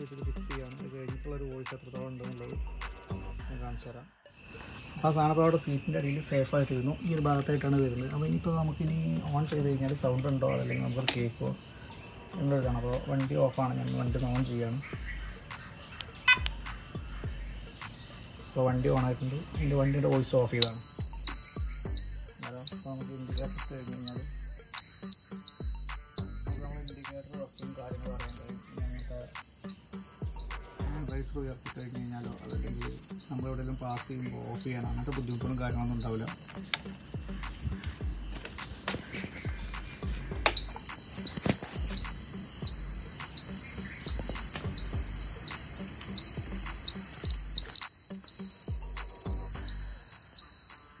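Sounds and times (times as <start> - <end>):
background music: 0.0 - 51.0
high-pitched buzzer tone: 20.6 - 38.0, 40.6 - 51.0.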